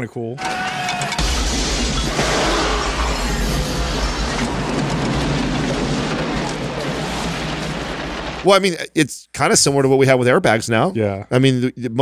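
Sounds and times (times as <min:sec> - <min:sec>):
rush of spraying water and debris: 0:01.2 - 0:08.5.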